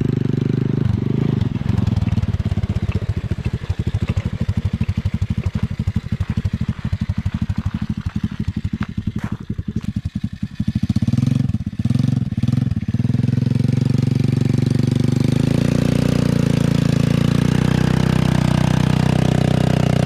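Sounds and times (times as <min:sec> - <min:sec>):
small petrol engine revving: 0:00.0 - 0:20.0
tyres churning through mud: 0:00.0 - 0:20.0
water splashing: 0:01.4 - 0:08.3.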